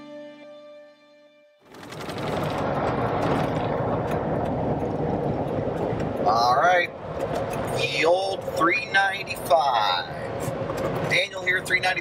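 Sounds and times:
car road noise: 1.6s - 12.0s.

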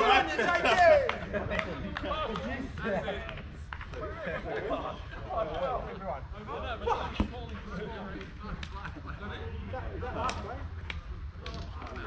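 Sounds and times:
players talking and calling: 0.0s - 12.0s.

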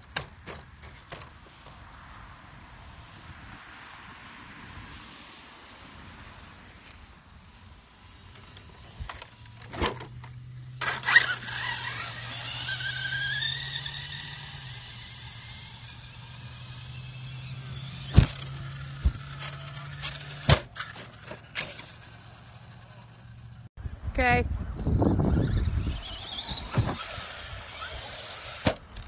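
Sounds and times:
rc truck motor whine: 6.8s - 23.7s, 24.8s - 29.0s.

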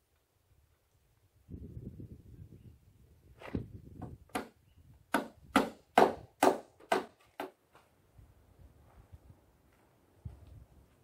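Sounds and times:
hammer striking wooden board: 4.3s - 4.5s, 5.1s - 7.6s.

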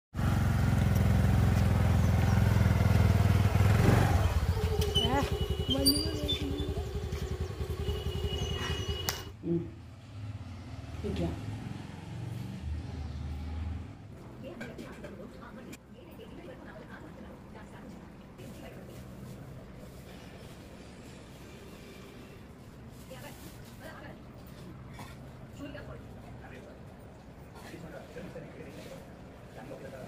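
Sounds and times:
motor scooter engine running: 0.2s - 9.3s.

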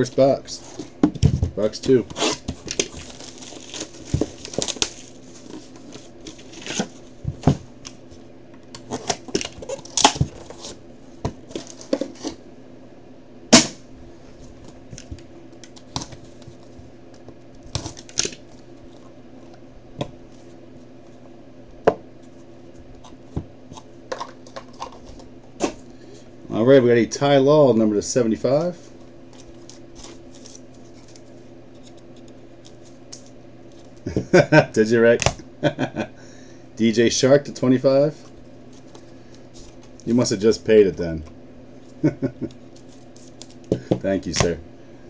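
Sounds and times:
wrapper and cardboard rustling: 0.0s - 7.6s.

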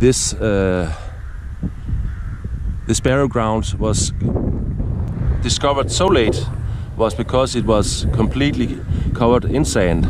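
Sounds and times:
wind buffeting microphone: 0.0s - 10.0s
person speaking: 5.4s - 8.9s.

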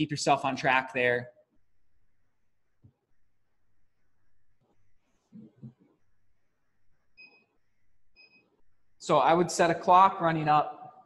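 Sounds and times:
faint electronic beeps: 6.2s - 9.0s.

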